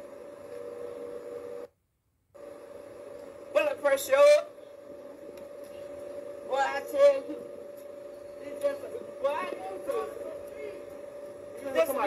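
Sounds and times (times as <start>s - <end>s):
thin hum-like tone: 4.5s - 12.0s.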